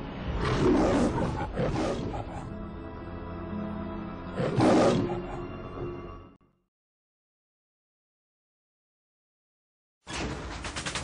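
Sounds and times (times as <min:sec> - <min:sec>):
lion roaring: 0:00.3 - 0:02.5, 0:04.3 - 0:05.5.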